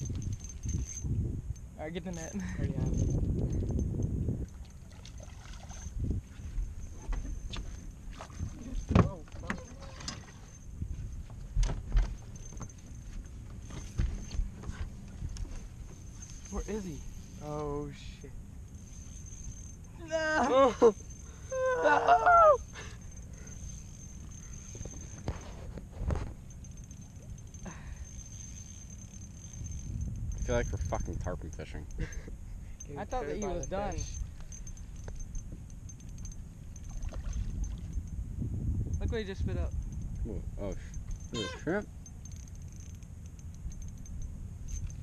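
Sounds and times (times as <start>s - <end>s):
wind rumble on microphone: 0.0s - 45.0s
faint high whine: 4.9s - 31.9s.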